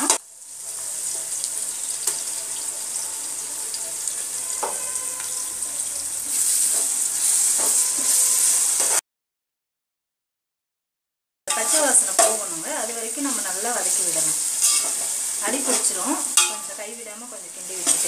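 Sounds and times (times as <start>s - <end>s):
onions sizzling in hot oil: 0.0s - 9.0s, 11.5s - 18.0s
metal ladle scraping a pot: 6.3s - 9.0s, 14.5s - 15.2s.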